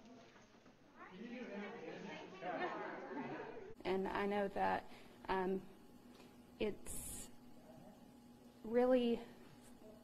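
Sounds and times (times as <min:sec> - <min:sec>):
woman's voice: 0:08.6 - 0:09.4.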